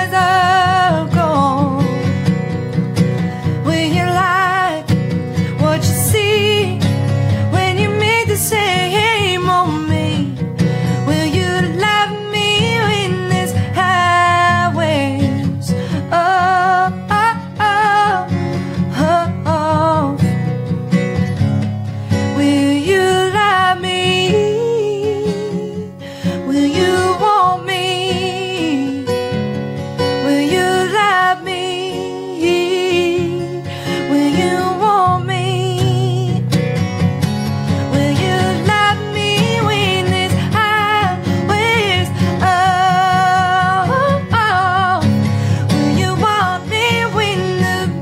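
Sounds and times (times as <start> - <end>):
strummed acoustic guitar: 0.0 - 48.0
woman singing country melody: 0.0 - 48.0.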